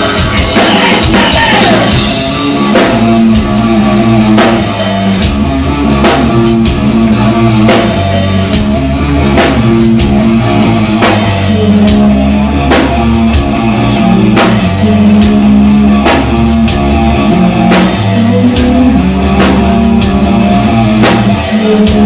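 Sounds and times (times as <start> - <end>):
drum kit beat: 0.0 - 22.0
electric guitar playing: 0.0 - 22.0.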